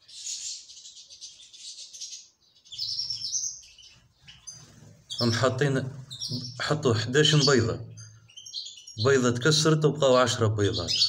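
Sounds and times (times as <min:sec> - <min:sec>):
canaries chirping: 0:00.0 - 0:11.0.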